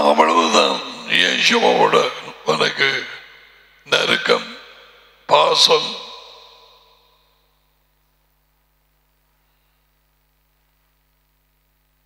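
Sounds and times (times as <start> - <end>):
man speaking: 0.0 - 6.8.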